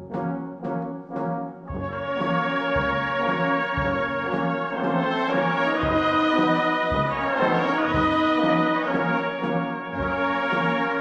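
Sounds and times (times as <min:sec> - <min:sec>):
brass band playing a funeral march: 0:00.0 - 0:11.0
low bass notes: 0:00.0 - 0:11.0.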